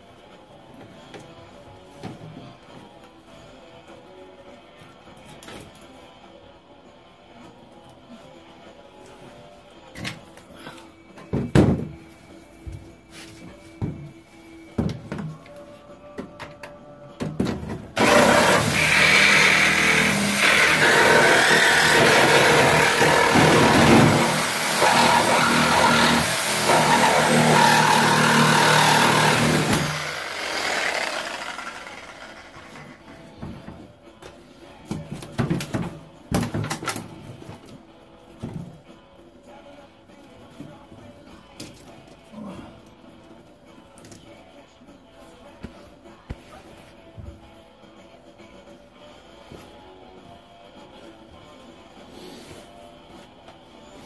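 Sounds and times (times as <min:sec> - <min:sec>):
reciprocating saw cutting metal: 0:18.0 - 0:33.0.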